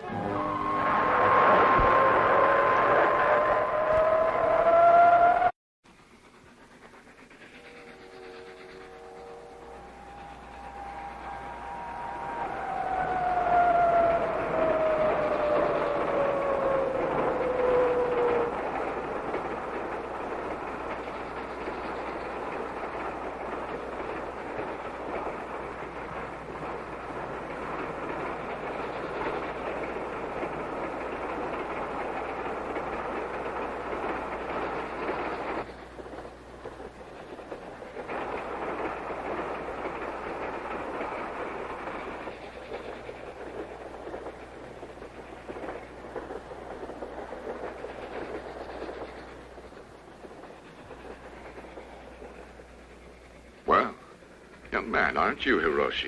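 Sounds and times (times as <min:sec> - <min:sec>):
train whistle sliding down in pitch: 0:00.0 - 0:05.5, 0:07.8 - 0:18.6
train running noise: 0:00.0 - 0:56.0.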